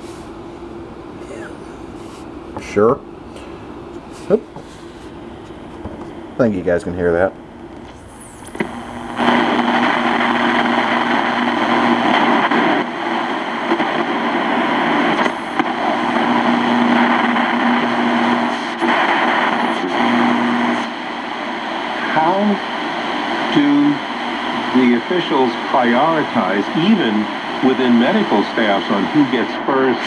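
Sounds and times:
low hum: 0.0s - 30.0s
radio static hiss: 0.0s - 30.0s.

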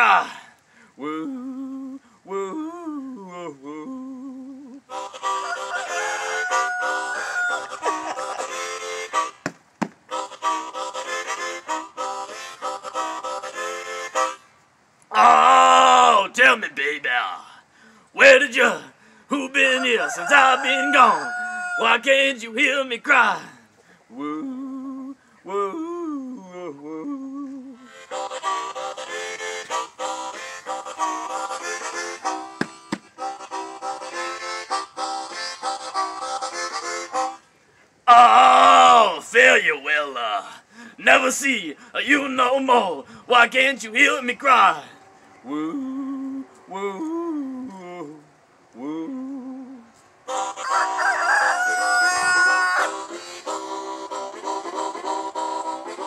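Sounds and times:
man singing high wails: 0.0s - 8.6s, 15.1s - 17.5s, 18.2s - 28.8s, 38.1s - 49.9s, 51.8s - 53.7s
blues harmonica chords: 4.8s - 14.5s, 27.8s - 37.6s, 50.3s - 51.0s, 52.4s - 56.0s.

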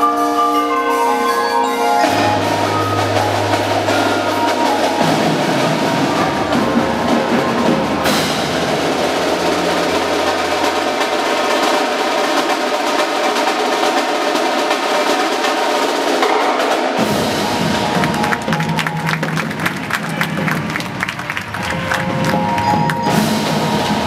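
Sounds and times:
mallet keyboards: 0.0s - 24.0s
snare drums: 0.0s - 24.0s
tenor drums: 0.0s - 24.0s
bass drums: 2.0s - 12.4s.

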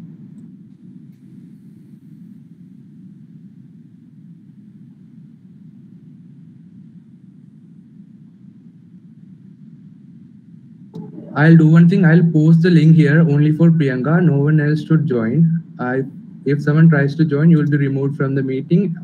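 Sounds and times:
microphone background hum: 0.0s - 19.0s.

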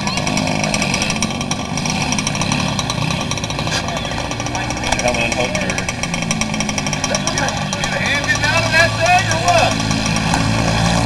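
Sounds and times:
indistinct talking: 0.0s - 11.0s
vehicle engine idling: 0.0s - 11.0s.

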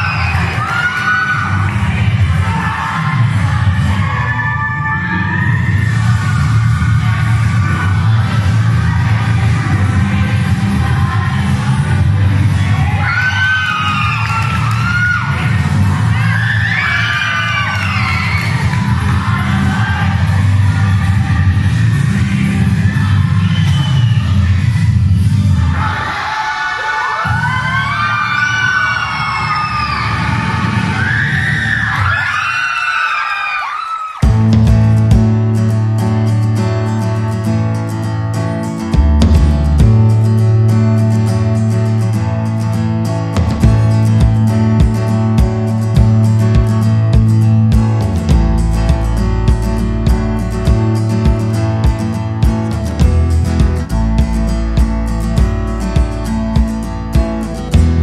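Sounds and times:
children shouting and whooping: 0.0s - 9.2s, 12.6s - 20.4s, 25.6s - 34.3s
dance music with heavy beat: 34.2s - 36.1s, 38.9s - 40.7s, 43.4s - 58.0s.

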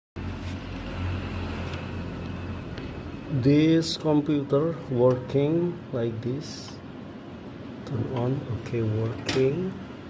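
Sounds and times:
low mechanical hum: 0.2s - 10.0s.

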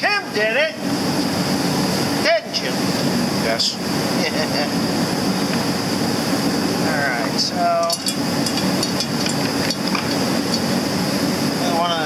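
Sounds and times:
steady background hum: 0.0s - 12.0s
hand tools tapping metal housing: 7.8s - 10.6s.

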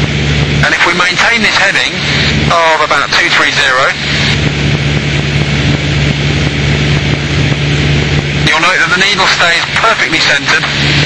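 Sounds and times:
aircraft engine droning: 0.0s - 11.0s
rushing air noise: 0.0s - 11.0s.

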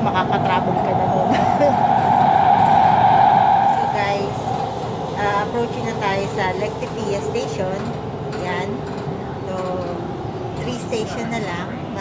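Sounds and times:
metro train rushing hum: 0.0s - 12.0s.

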